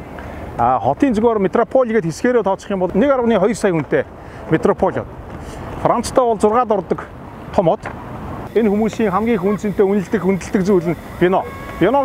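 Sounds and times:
person narrating: 8.5 - 12.0.

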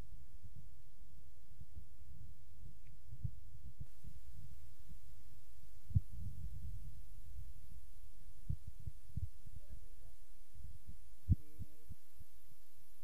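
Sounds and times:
wind buffeting microphone: 5.9 - 7.1, 8.4 - 9.8.

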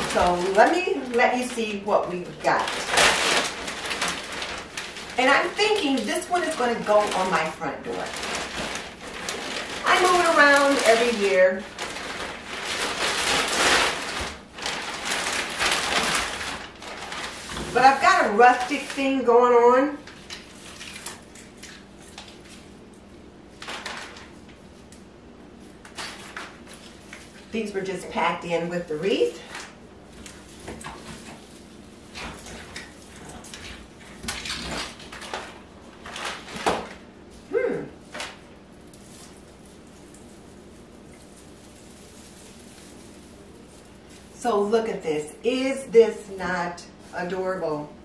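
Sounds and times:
plastic bag crinkling and rustling: 0.0 - 47.6.

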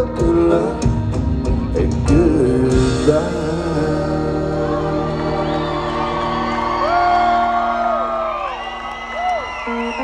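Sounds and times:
country band holding a chord: 0.0 - 10.0
audience whooping and cheering: 4.2 - 10.0.

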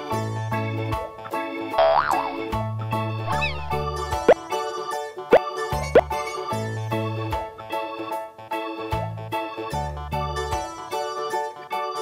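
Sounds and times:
bouncy children's music: 0.0 - 12.0
cartoon wobbly boing: 1.8 - 2.5, 3.3 - 4.4.

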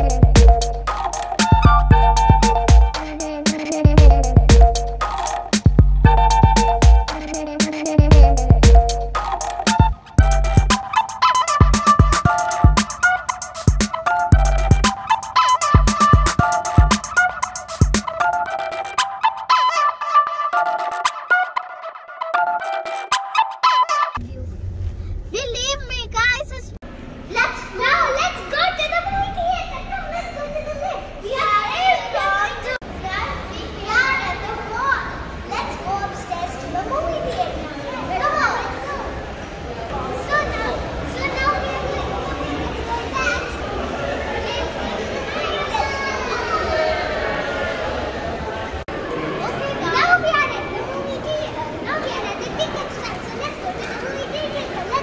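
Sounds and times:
children's excited voices: 25.4 - 55.0.

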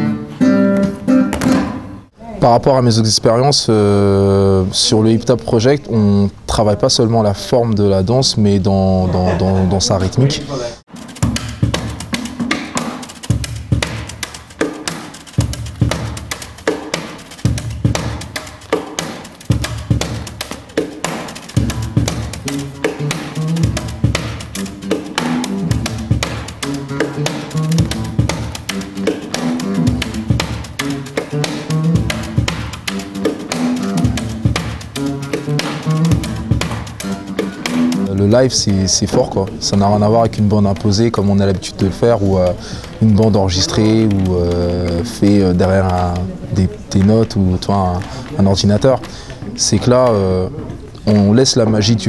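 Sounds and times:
live band music: 10.9 - 51.1
tap shoes striking stage floor: 11.1 - 38.1, 41.8 - 51.0.

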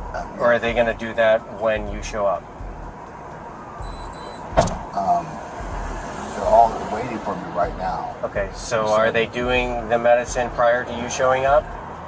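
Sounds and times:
low rumble of street traffic: 0.0 - 12.0
short electronic beeps: 3.8 - 4.5
sharp knock: 4.5 - 5.0.

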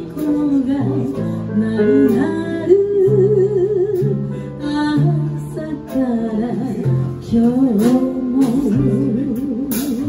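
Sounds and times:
drums: 0.0 - 10.0
piano: 0.0 - 10.0
woman singing jazz ballad: 0.0 - 10.0.

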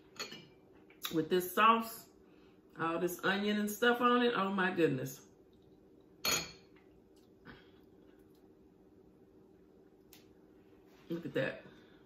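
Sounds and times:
metal spoon clinking on glass bowl: 6.2 - 6.7.

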